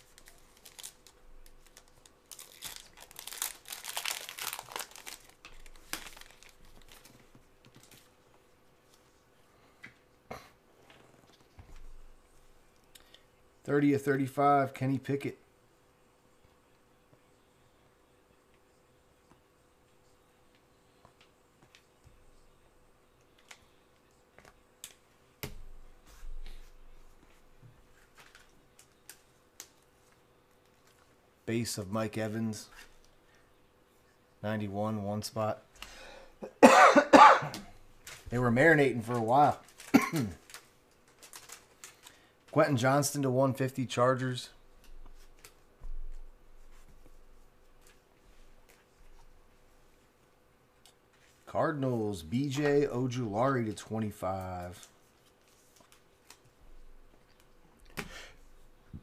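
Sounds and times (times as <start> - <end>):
foil wrapper crinkling and tearing: 0.0 - 7.1, 39.1 - 42.2.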